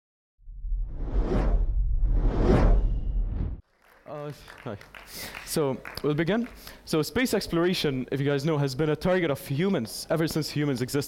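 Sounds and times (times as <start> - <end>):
deep rumble: 0.4 - 3.6
whoosh sound effects: 0.7 - 3.6.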